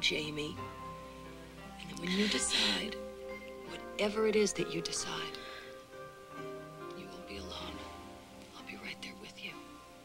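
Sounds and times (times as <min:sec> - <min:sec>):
soft music with held chords: 0:00.0 - 0:10.0.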